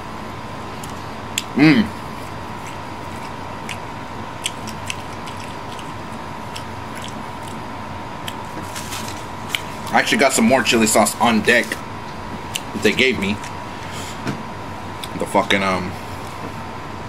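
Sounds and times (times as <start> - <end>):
man chewing with wet mouth sounds: 0.7 - 10.0, 12.4 - 13.9, 15.0 - 15.2.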